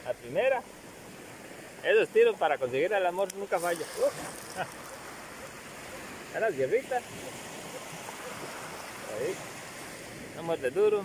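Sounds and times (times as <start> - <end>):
surf hissing on beach: 0.0 - 11.0
man speaking: 1.8 - 4.8, 6.3 - 7.1, 9.0 - 9.4.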